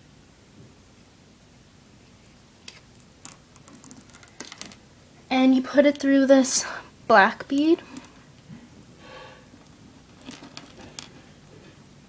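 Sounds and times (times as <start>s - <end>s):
plastic beads clicking: 3.2s - 4.8s.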